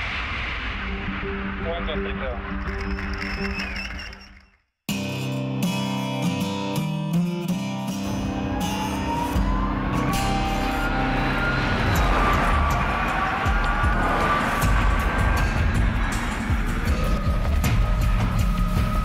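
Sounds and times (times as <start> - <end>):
background music: 4.9 - 19.0.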